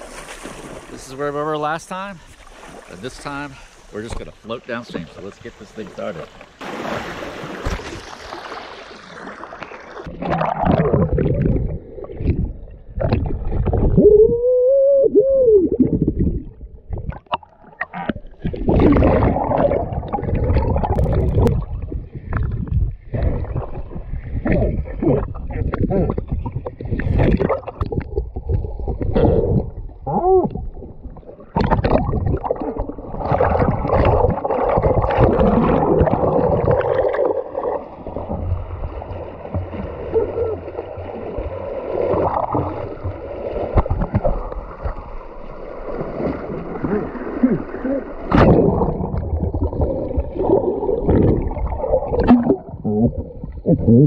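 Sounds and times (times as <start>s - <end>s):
water sloshing and splashing: 0.0s - 14.2s, 15.7s - 53.7s.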